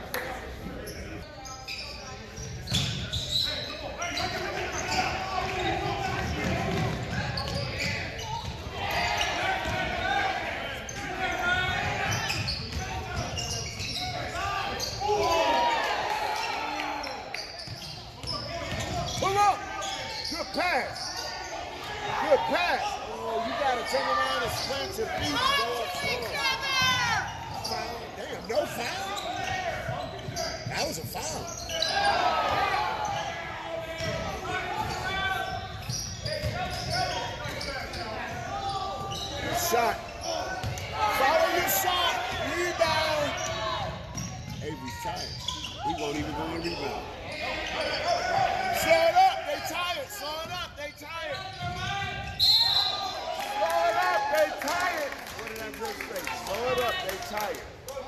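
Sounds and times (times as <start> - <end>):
people shouting and talking: 0.0 - 58.0.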